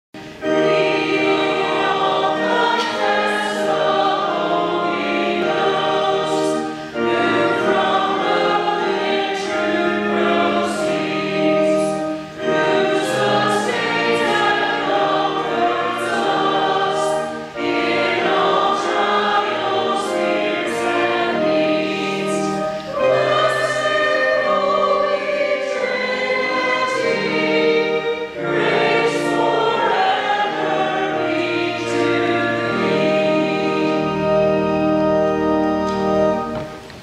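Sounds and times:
choir singing: 0.2s - 36.9s.

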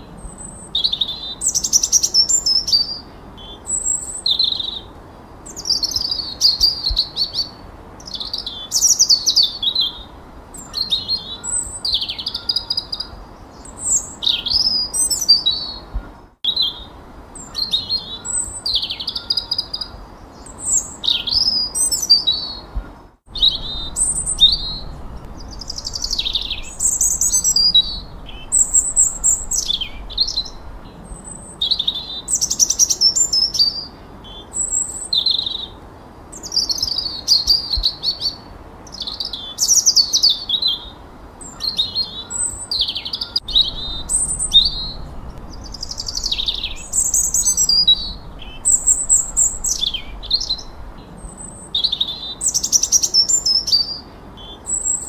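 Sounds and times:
songbirds singing: 0.0s - 55.0s.

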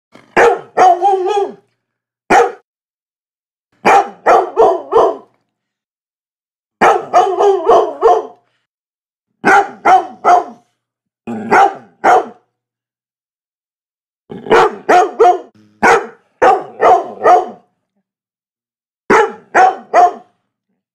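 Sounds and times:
dog barking loudly: 0.3s - 1.6s, 2.3s - 2.6s, 3.8s - 5.3s, 6.8s - 8.4s, 9.4s - 10.7s, 11.5s - 12.5s, 14.5s - 17.7s, 19.1s - 20.3s.

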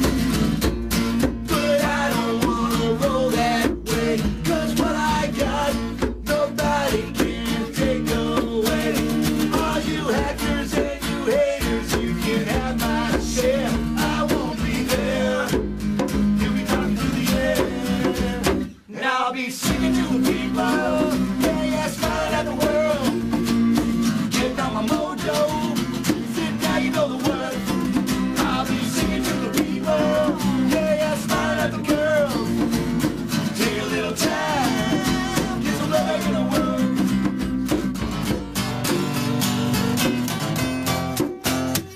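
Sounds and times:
acoustic guitar strumming: 0.0s - 18.8s, 19.6s - 41.9s
man singing: 1.4s - 32.8s, 33.4s - 37.4s.

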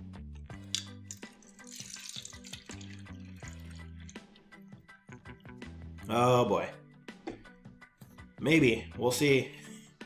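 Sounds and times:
water pouring into plastic cup: 1.2s - 4.3s.

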